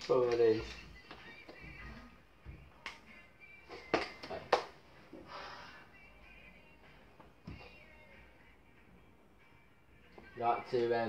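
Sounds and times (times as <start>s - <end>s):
faint music from headphones: 0.0s - 11.0s.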